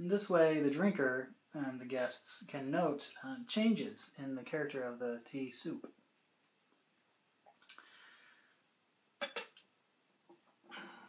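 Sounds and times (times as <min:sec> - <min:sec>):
porcelain clinking on glass: 0:09.2 - 0:09.6.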